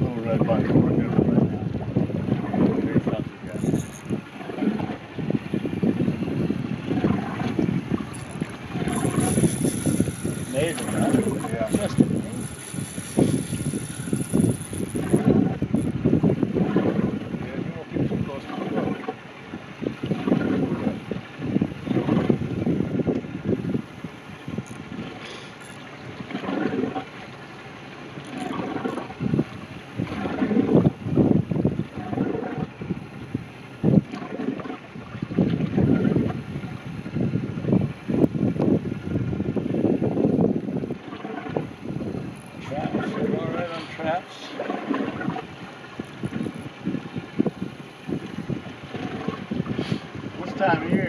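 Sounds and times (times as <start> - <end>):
wind buffeting microphone: 0.0 - 27.5, 28.1 - 51.0.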